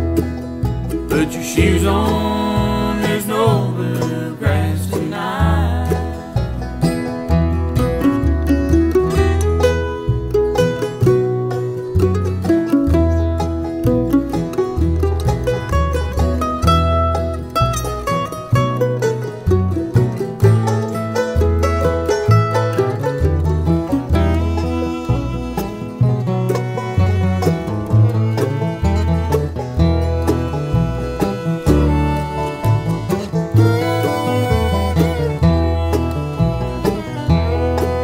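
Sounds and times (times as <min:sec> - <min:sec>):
acoustic guitars: 0:00.0 - 0:38.0
banjo: 0:00.0 - 0:38.0
mandolin: 0:00.0 - 0:38.0
upright bass: 0:00.0 - 0:38.0.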